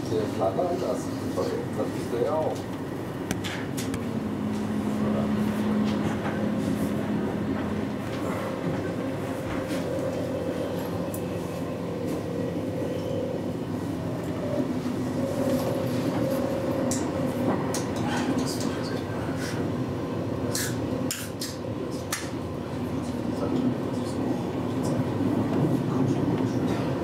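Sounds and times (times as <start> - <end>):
train rumbling on track: 0.0 - 27.0.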